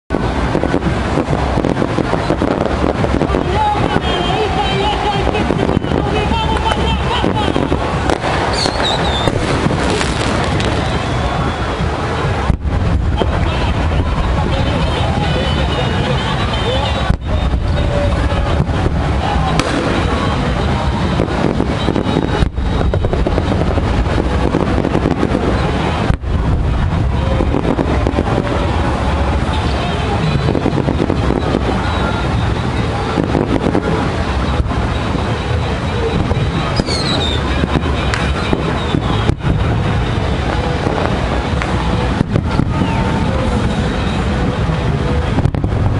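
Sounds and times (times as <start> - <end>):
crowd voices: 0.1 - 45.9
fireworks cracking: 0.1 - 45.9
wind on microphone: 0.1 - 45.9
wavering high whistle: 8.5 - 9.3, 36.8 - 37.5
low rumble: 17.0 - 36.8, 37.4 - 45.9.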